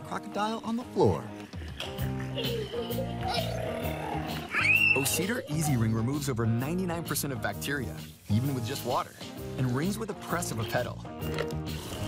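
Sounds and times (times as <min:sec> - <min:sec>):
background music: 0:00.0 - 0:12.0
child squealing: 0:01.8 - 0:06.0.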